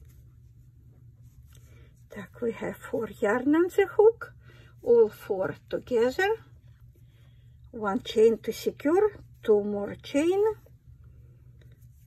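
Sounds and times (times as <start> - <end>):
yarn scratching and rustling: 0.0 - 3.9
steady low hum: 0.0 - 12.0.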